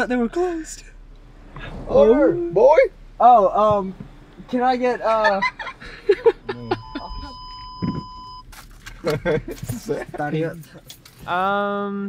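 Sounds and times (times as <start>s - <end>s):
car warning beep: 6.2s - 8.5s.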